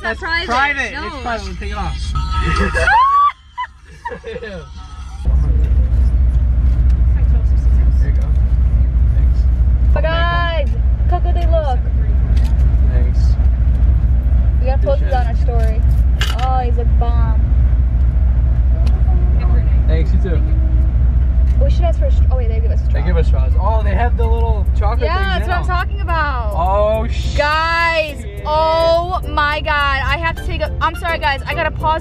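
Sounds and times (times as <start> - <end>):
car engine idling: 0.0 - 32.0
muffled voices: 4.3 - 13.5.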